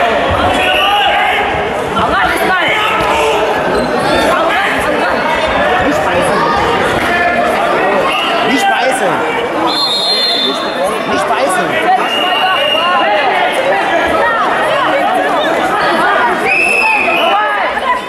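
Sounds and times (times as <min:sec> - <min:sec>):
reverberant crowd chatter: 0:00.0 - 0:18.0.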